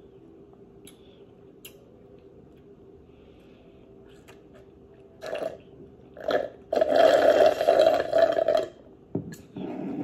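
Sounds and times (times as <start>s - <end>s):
slurping through a straw: 6.2s - 8.8s, 9.5s - 10.0s.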